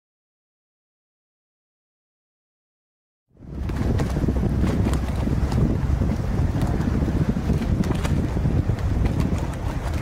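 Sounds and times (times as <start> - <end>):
wind buffeting microphone: 3.4 - 10.0.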